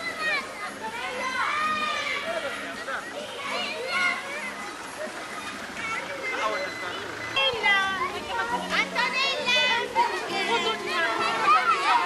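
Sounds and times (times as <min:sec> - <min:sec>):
children calling out: 0:00.0 - 0:12.0.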